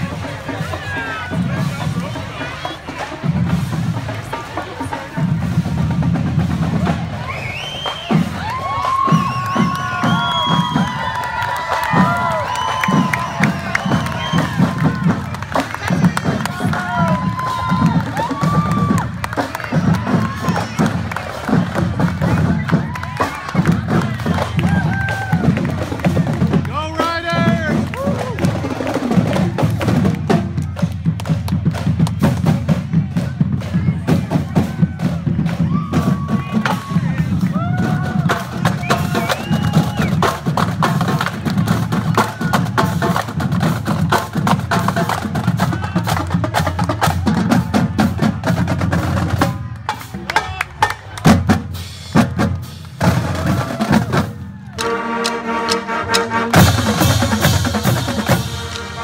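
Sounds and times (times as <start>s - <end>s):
marching drumline: 0.0s - 59.0s
brass and saxophones: 53.0s - 59.0s.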